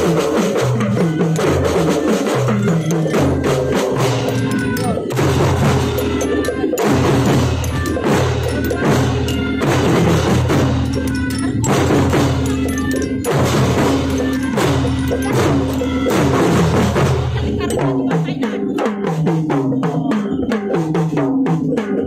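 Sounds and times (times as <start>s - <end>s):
snare drums: 0.0s - 22.0s.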